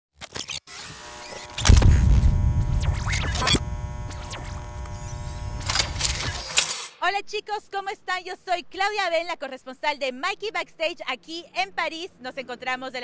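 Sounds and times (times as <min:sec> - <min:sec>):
electronic drone: 0:00.7 - 0:06.8
clicks: 0:01.4 - 0:06.8
deep bass hit: 0:01.6 - 0:03.0.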